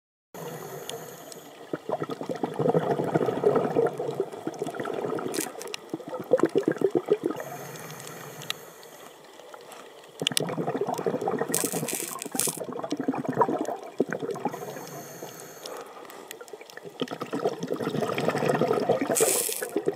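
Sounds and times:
steady hiss: 0:00.4 - 0:01.7, 0:07.4 - 0:09.9, 0:14.5 - 0:16.3, 0:19.1 - 0:19.8
air bubbling underwater: 0:01.7 - 0:07.5, 0:10.2 - 0:14.7, 0:17.0 - 0:19.9.

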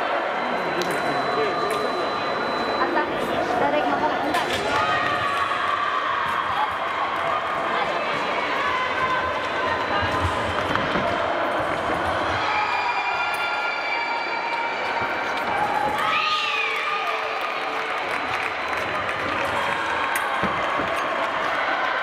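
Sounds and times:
hubbub of echoing voices: 0:00.0 - 0:22.0.

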